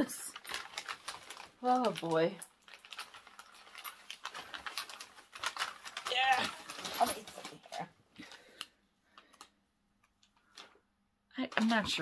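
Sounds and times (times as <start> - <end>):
wrapping paper rustling and crinkling: 0.0 - 9.5, 11.4 - 12.0.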